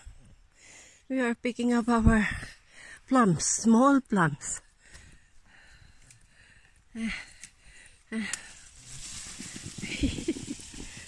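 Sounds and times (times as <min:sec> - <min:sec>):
leaves rustling: 0:08.3 - 0:11.0.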